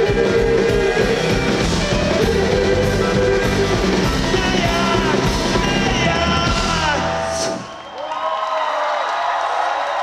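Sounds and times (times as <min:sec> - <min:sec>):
live rock band with singing: 0:00.0 - 0:07.9
crowd cheering and whooping: 0:00.0 - 0:10.0.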